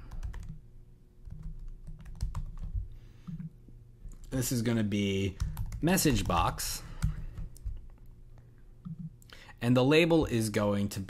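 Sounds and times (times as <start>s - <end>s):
typing on computer keyboard: 0.0s - 0.6s, 1.2s - 3.5s, 5.4s - 6.4s.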